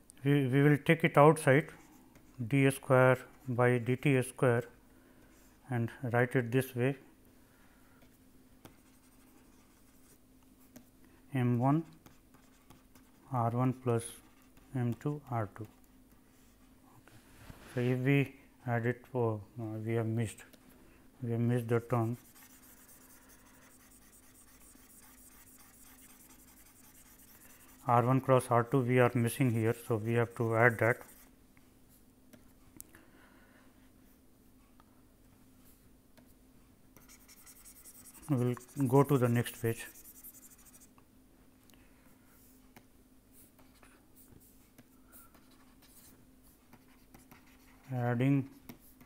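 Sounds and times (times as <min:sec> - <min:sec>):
low electrical hum: 0:00.0 - 0:49.0
stylus scratching on tablet: 0:08.6 - 0:10.8, 0:11.8 - 0:13.4, 0:14.0 - 0:16.7, 0:21.5 - 0:31.3, 0:37.0 - 0:40.9, 0:43.4 - 0:49.0.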